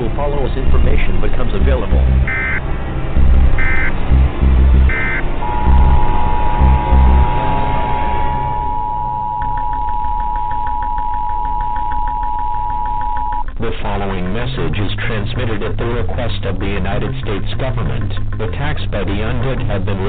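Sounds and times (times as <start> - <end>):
deep pulsing rumble: 0.0 - 20.0
two-pitch alert tone: 1.9 - 2.6, 3.2 - 13.4
fast ticking: 3.2 - 19.9
short high beeps: 4.9 - 13.4.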